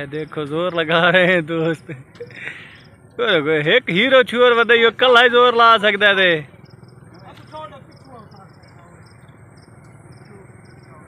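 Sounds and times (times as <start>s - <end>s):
faint men's voices: 0.0s - 11.0s
insect chirping: 0.0s - 11.0s.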